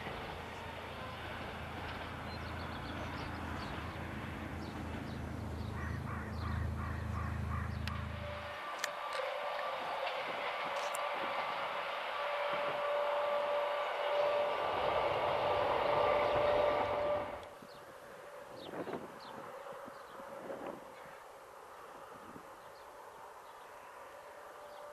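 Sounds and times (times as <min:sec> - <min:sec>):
electric train rolling: 0:00.0 - 0:24.9
birds calling: 0:02.3 - 0:08.9.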